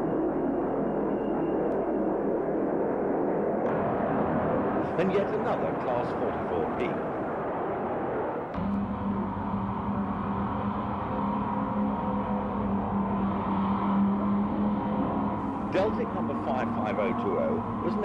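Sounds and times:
low locomotive engine drone: 0:00.0 - 0:18.0
diesel locomotive engine: 0:08.6 - 0:18.0.

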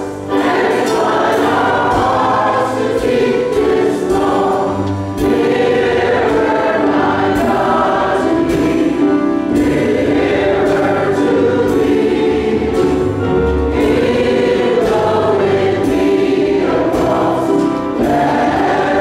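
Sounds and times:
choir singing gospel: 0:00.0 - 0:19.0.

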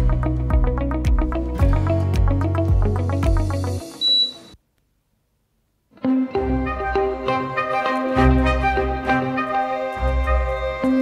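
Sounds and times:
background music: 0:00.0 - 0:04.6, 0:06.0 - 0:11.0
high electronic beep: 0:04.0 - 0:04.6.

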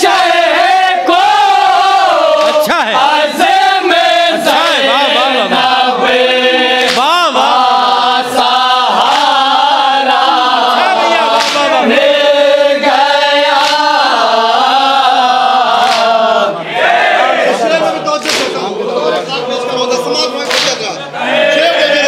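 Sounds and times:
men chanting in unison: 0:00.0 - 0:22.0.

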